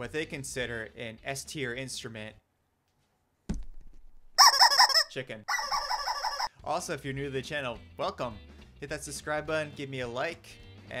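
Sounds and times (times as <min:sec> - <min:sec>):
rubber chicken squawking: 0:04.4 - 0:06.5.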